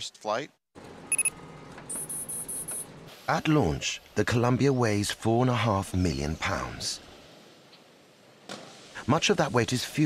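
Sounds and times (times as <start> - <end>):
high-pitched pulsed beeping: 1.1 - 1.3, 1.9 - 2.8
electronic beeps: 1.1 - 2.9
faint steady hiss: 2.9 - 10.0.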